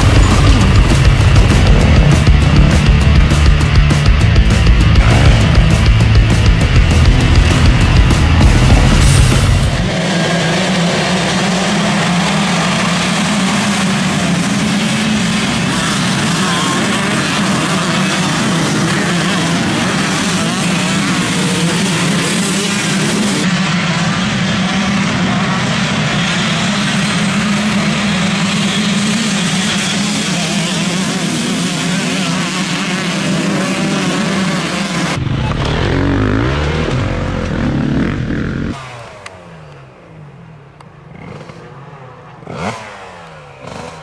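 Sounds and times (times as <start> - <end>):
dirt bike engines revving: 0.0 - 44.0.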